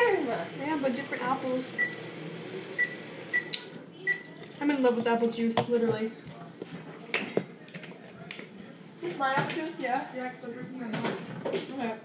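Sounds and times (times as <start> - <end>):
juice pouring into bottle: 0.6 - 3.7.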